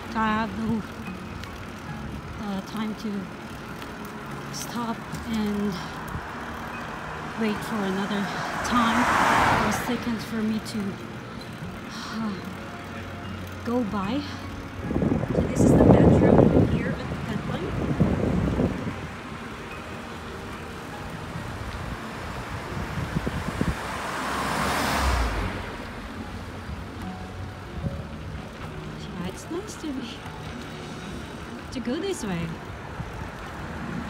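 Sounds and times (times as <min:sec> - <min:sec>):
roadside traffic noise: 0:00.0 - 0:34.0
car passing close by: 0:05.1 - 0:12.6, 0:15.0 - 0:34.0.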